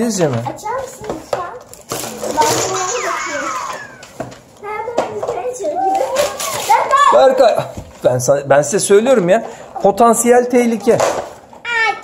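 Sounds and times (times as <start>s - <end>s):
children talking and exclaiming: 0.4s - 7.8s, 11.6s - 12.0s
paper leaflets rustling: 5.8s - 7.0s.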